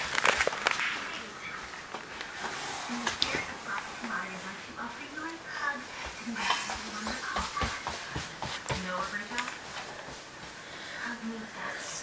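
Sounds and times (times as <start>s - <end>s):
footsteps on wooden floor: 5.2s - 10.8s.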